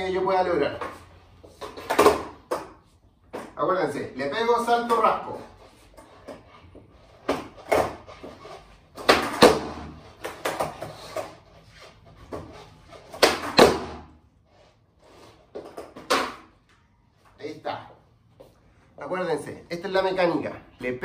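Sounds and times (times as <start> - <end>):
skateboard clacking on wooden floor: 9.0 - 11.4.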